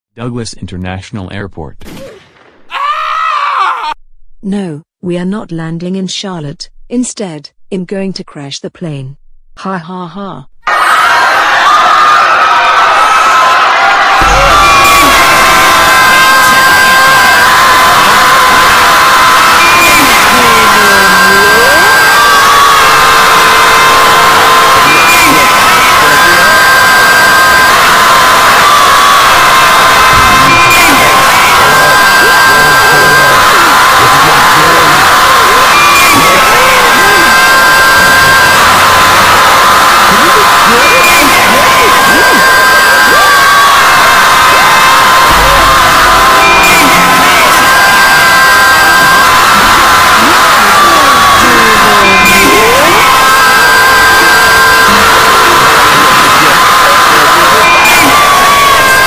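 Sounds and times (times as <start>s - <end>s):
cartoon screams and yells: 1.9s - 4.0s, 10.7s - 59.0s.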